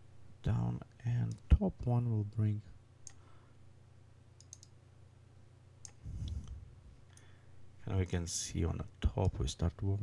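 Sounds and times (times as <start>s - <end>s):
low steady hum: 0.0s - 10.0s
computer mouse clicks: 4.4s - 4.8s.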